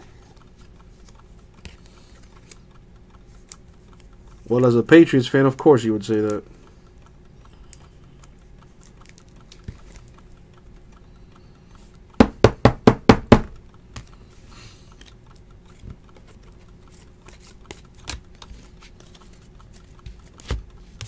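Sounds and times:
trading cards clicking: 0.2 - 12.2, 13.5 - 21.0.

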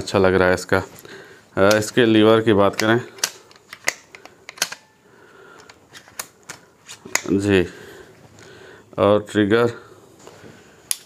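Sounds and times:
air rifle cocking lever clicks: 2.7 - 4.9.

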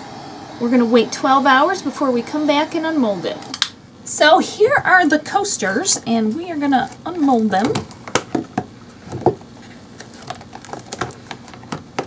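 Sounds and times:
resin clicking and crackling: 10.0 - 12.0.

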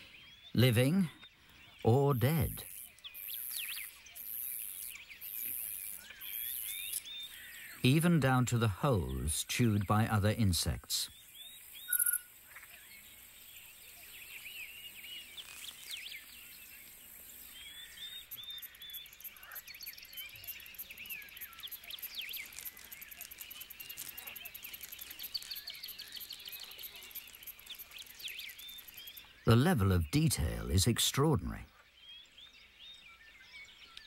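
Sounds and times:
small chirping calls: 0.0 - 8.0, 11.1 - 32.3
rapid insect-like pulsing: 18.4 - 29.2.

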